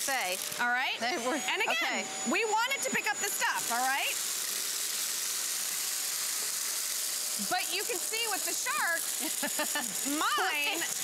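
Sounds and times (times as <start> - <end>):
vacuum cleaners running: 0.0 - 11.0.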